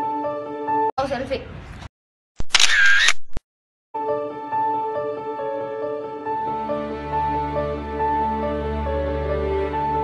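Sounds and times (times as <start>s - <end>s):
camera shutter clicks: 2.4s - 3.4s.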